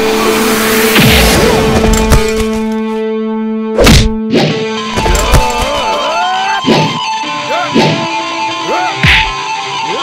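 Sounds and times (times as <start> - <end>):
punch hit effect: 0.9 - 2.4, 3.8 - 4.7.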